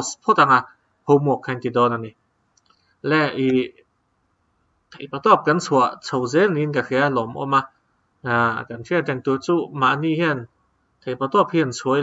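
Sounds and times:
man speaking: 0:00.0 - 0:02.2, 0:03.0 - 0:03.9, 0:04.9 - 0:12.0
faint clicks: 0:02.5 - 0:02.9.

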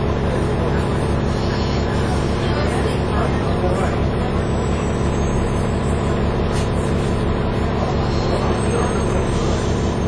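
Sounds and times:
bus diesel engine running: 0:00.0 - 0:10.0
road noise: 0:00.0 - 0:10.0.

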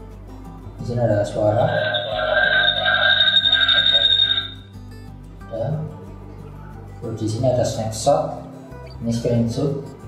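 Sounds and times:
soft background music: 0:00.0 - 0:10.0
acoustic feedback ringing tone: 0:01.3 - 0:04.8.

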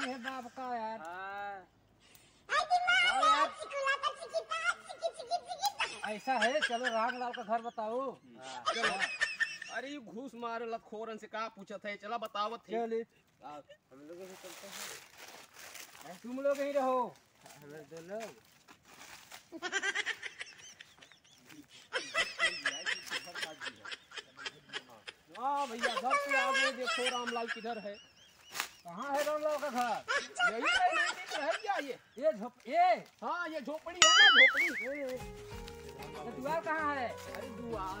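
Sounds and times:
person laughing: 0:04.7 - 0:09.7, 0:34.0 - 0:35.0
footsteps crunching on dry leaves: 0:14.1 - 0:19.6, 0:28.3 - 0:30.0, 0:32.6 - 0:38.0.

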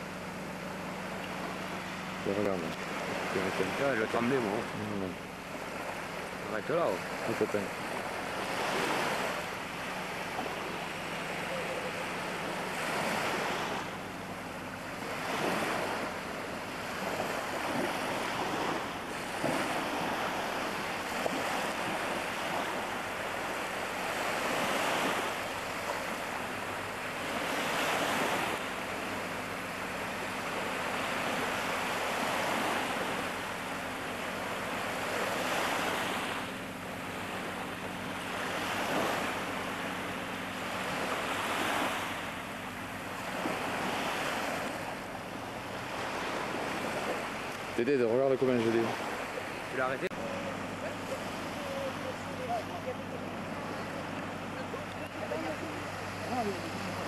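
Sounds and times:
sea waves washing: 0:00.0 - 0:57.0.

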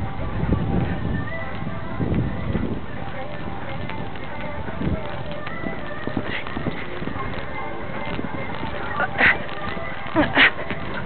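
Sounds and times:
rush of movement noise: 0:00.0 - 0:11.0.

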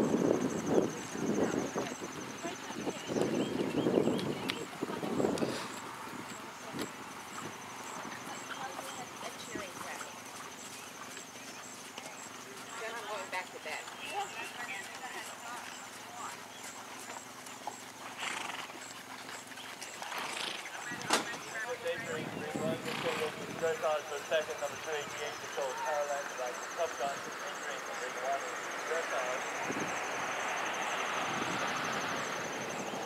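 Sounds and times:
faint voices: 0:00.0 - 0:18.6, 0:19.3 - 0:32.0
horse trotting on sand: 0:00.6 - 0:27.4.

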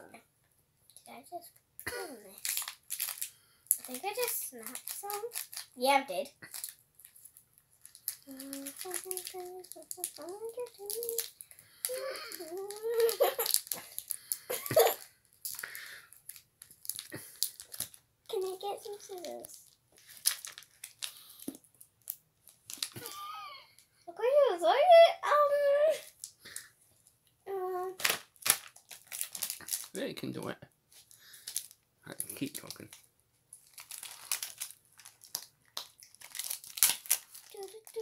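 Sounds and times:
plastic wrapper crinkling and tearing: 0:02.2 - 0:23.4, 0:25.9 - 0:26.7, 0:27.8 - 0:30.0, 0:30.9 - 0:38.0.

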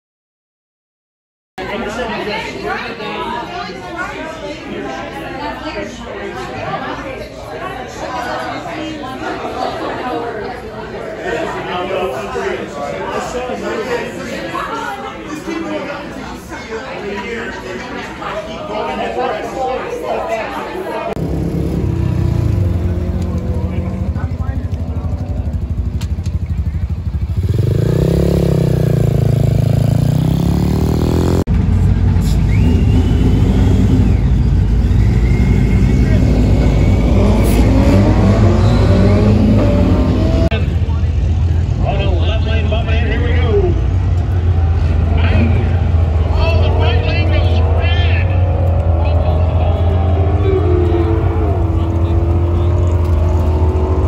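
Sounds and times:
people talking: 0:01.6 - 0:30.6, 0:31.7 - 0:54.0
chatter of voices: 0:01.6 - 0:30.8, 0:31.6 - 0:54.0
car engines idling and revving: 0:21.1 - 0:54.0.

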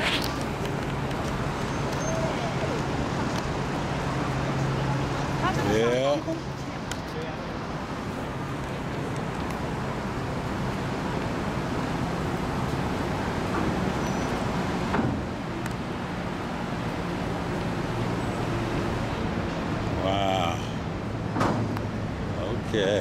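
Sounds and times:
city traffic noise: 0:00.0 - 0:23.0.

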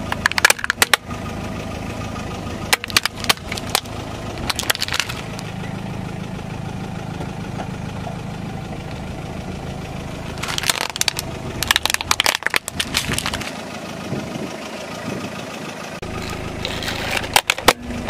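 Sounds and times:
plastic toy cracking under tyre: 0:00.0 - 0:01.0, 0:02.7 - 0:05.4, 0:10.4 - 0:13.6, 0:17.2 - 0:17.8
car engine idling: 0:00.0 - 0:18.0.

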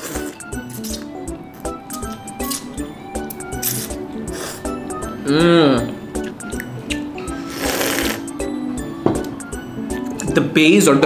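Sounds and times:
person slurping noodles: 0:00.0 - 0:01.1, 0:03.6 - 0:04.7, 0:07.4 - 0:08.3
background music with steady beat: 0:00.0 - 0:11.0.

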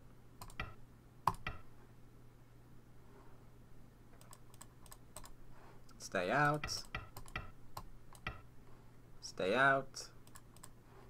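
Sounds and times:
low steady hum: 0:00.0 - 0:11.0
faint computer clicks: 0:00.4 - 0:01.6, 0:04.2 - 0:05.4.

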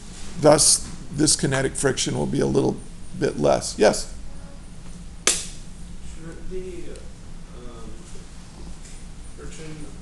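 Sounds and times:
sharp snap: 0:05.2 - 0:05.6.

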